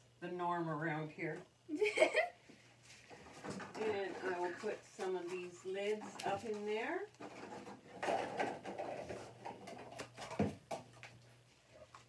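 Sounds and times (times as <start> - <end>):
plastic lids rustling and clattering: 7.2 - 11.0.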